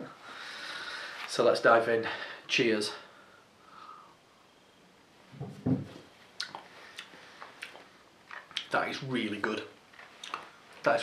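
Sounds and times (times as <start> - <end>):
man breathing out through nose: 0.2 - 1.2
mouth clicks: 6.4 - 8.7.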